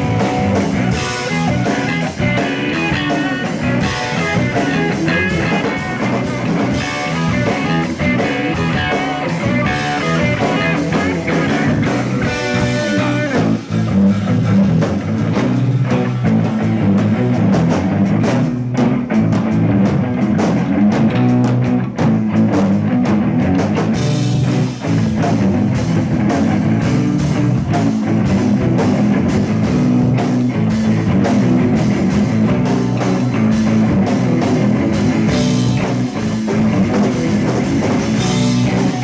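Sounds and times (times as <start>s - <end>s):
drum kit: 0.0s - 39.0s
guitar: 0.0s - 39.0s.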